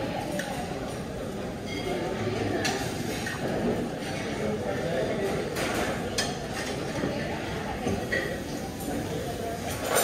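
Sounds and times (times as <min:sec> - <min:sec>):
murmur of voices: 0:00.0 - 0:10.0
dishes and utensils clinking: 0:00.2 - 0:10.0.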